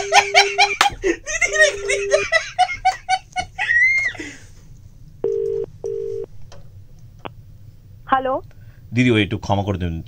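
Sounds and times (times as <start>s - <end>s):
telephone ringback tone: 5.2s - 6.3s.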